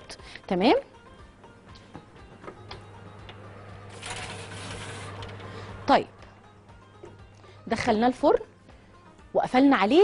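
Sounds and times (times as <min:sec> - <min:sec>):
oven humming: 0:01.6 - 0:07.6
baking tray sliding on metal rack: 0:03.9 - 0:05.4.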